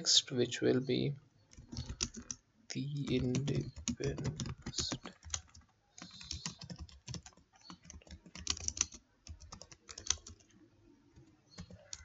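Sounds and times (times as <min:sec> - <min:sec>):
typing on computer keyboard: 0:01.5 - 0:02.4, 0:03.0 - 0:10.5, 0:11.2 - 0:12.0.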